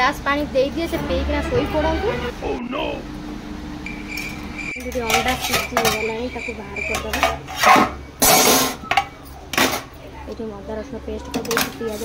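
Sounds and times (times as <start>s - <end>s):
pots and utensils clattering: 4.8s - 9.9s.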